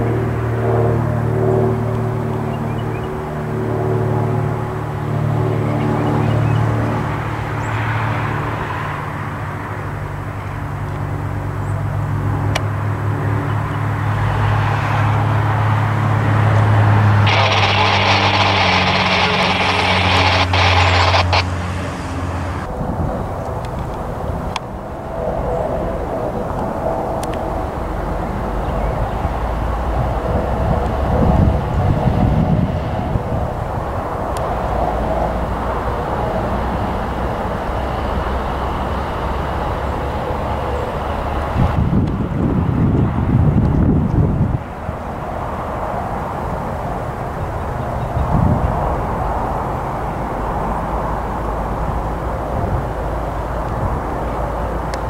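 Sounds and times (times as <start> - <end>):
helicopter rotor and engine: 0.0 - 14.4, 15.1 - 48.2
propeller plane engine drone: 0.0 - 55.0
loud hiss: 17.2 - 21.5.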